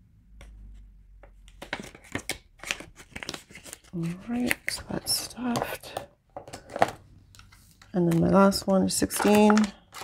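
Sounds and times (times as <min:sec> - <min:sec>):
paper envelopes rustling: 0:01.5 - 0:05.5, 0:06.5 - 0:10.0
woman speaking: 0:04.0 - 0:06.0, 0:07.9 - 0:09.8.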